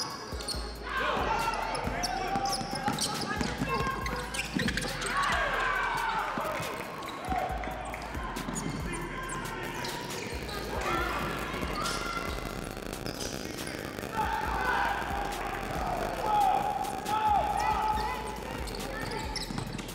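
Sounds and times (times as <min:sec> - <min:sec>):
shoes squeaking on court: 0:00.0 - 0:00.8, 0:01.7 - 0:19.9
people shouting: 0:00.8 - 0:19.9.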